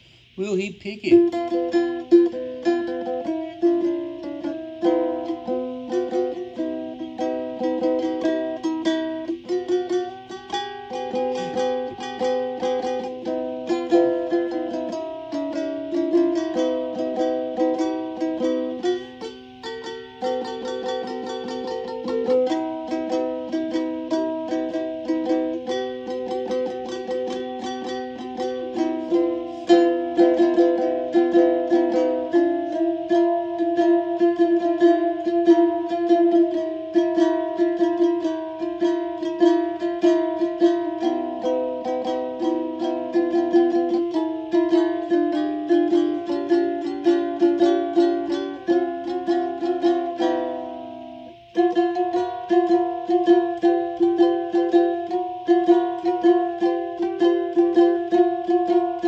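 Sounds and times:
plucked string instrument music: 1.0 - 59.0.

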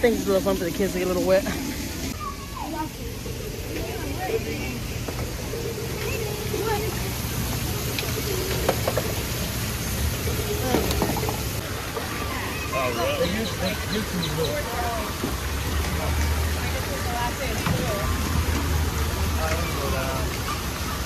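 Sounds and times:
water running and splashing: 0.0 - 21.0
faint children's voices: 2.0 - 9.0, 10.0 - 15.2, 16.1 - 21.0.

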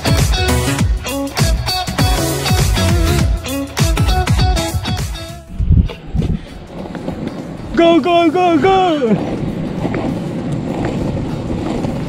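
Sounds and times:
longboard wheels rolling on asphalt: 0.0 - 12.0
low thumps: 0.2 - 7.8
wind on microphone: 5.4 - 12.0.

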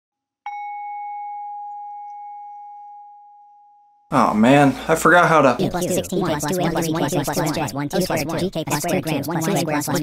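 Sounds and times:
bell-like chime: 0.5 - 4.0.

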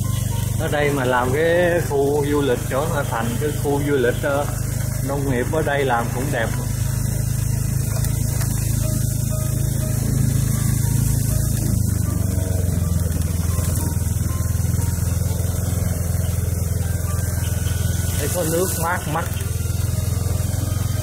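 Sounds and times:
small motorbike engine running: 0.0 - 21.0.

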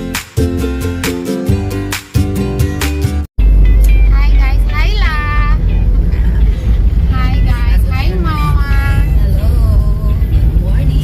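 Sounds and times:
car interior rumble: 3.4 - 11.0.

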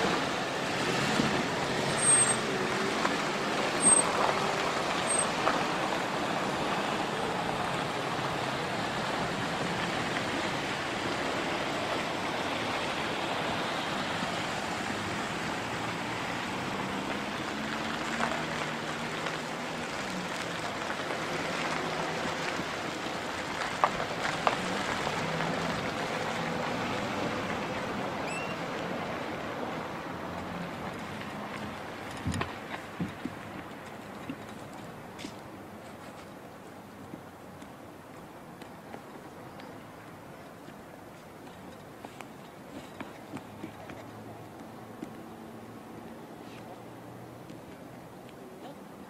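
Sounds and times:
vehicles driving slowly past: 0.0 - 49.0.

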